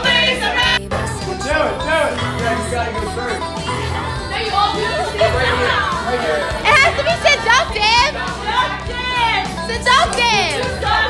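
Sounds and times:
young people shouting excitedly: 0.0 - 0.8, 3.6 - 11.0
background music: 0.0 - 11.0
people laughing: 0.0 - 11.0.

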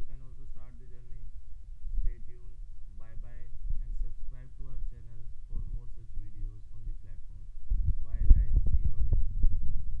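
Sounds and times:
low thumping rumble: 0.0 - 10.0.

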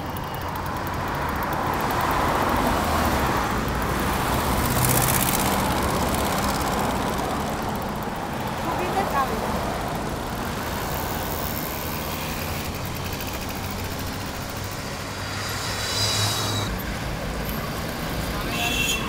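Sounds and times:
passing cars: 0.0 - 19.0.

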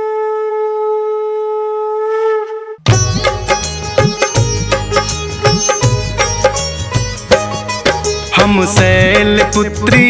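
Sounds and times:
conch shell blown: 0.0 - 3.0.

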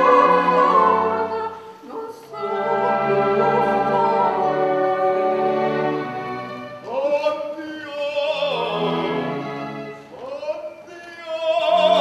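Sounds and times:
string orchestra sustained notes: 0.0 - 7.5, 8.5 - 10.2
operatic singing: 0.0 - 12.0.

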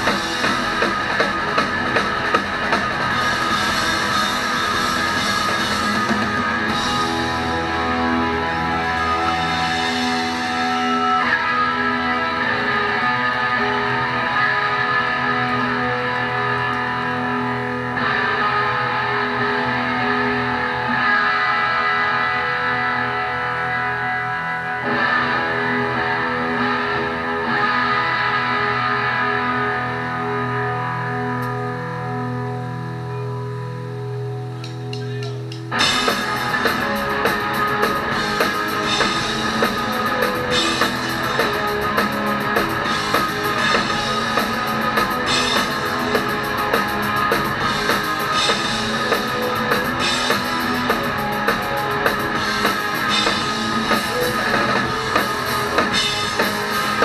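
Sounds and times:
electric guitars and bass chords: 0.0 - 57.0.

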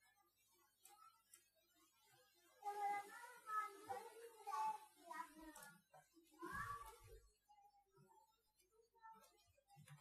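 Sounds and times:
faint child's voice: 0.0 - 10.0.

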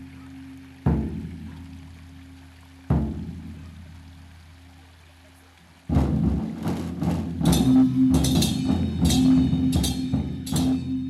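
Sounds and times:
deep drum strikes ringing: 5.9 - 11.0
drum gong and cymbals ensemble: 5.9 - 11.0.

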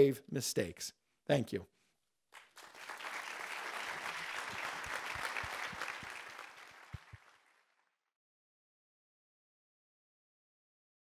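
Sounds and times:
audience applause: 2.4 - 7.8.

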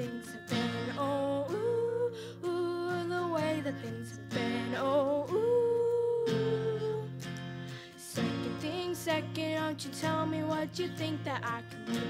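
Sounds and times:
acoustic guitars strumming: 0.0 - 12.0.

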